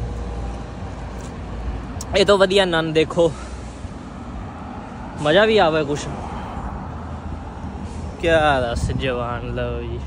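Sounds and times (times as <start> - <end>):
city street traffic rumble: 0.0 - 10.0.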